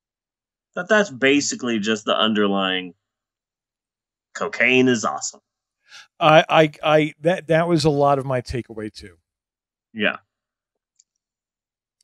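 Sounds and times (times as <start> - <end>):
person speaking: 6.0 - 9.1.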